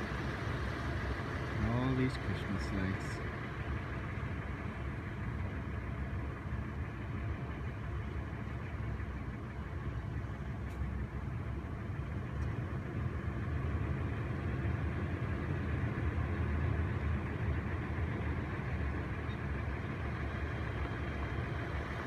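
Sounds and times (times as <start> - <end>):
car engine running: 0.0 - 22.0.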